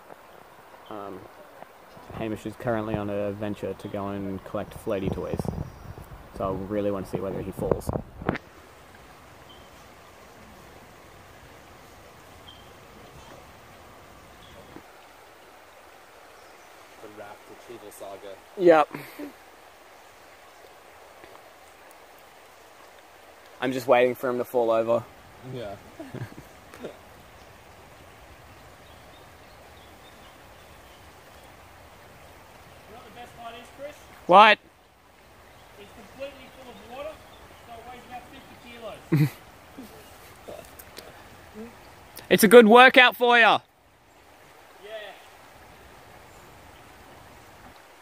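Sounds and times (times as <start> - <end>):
river flowing over rocks: 0.0 - 5.4, 6.1 - 48.0.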